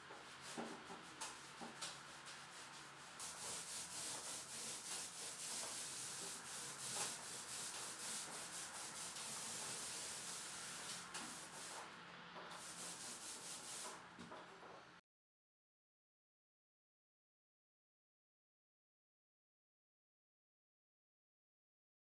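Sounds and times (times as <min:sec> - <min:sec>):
paint roller rolling: 0:00.0 - 0:14.8.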